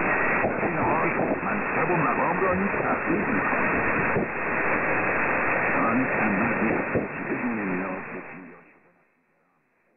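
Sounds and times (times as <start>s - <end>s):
radio static and hiss: 0.0s - 9.9s
faint radio talk: 0.4s - 3.7s, 5.8s - 9.7s.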